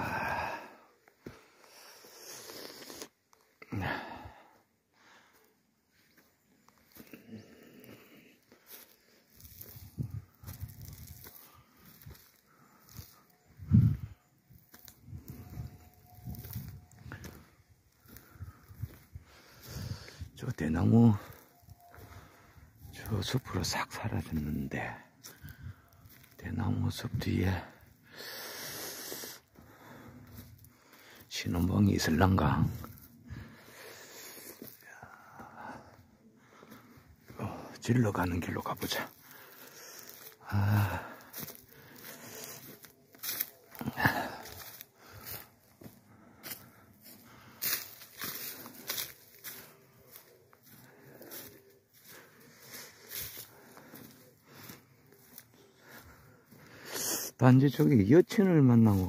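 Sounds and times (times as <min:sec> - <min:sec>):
breathy hiss on microphone: 0:01.7 - 0:03.2, 0:28.1 - 0:29.5, 0:56.7 - 0:57.4
footsteps on dry leaves: 0:06.0 - 0:59.0.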